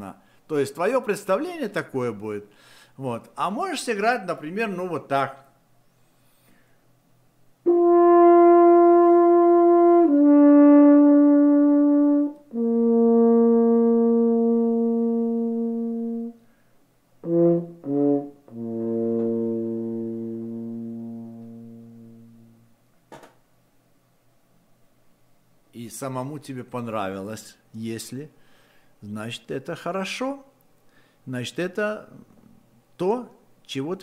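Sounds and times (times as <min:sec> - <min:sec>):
solo french horn: 0:07.6 - 0:16.6, 0:17.2 - 0:22.8.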